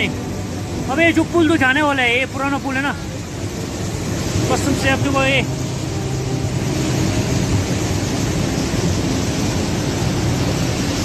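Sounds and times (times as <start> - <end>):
floodwater rushing: 0.0 - 11.0.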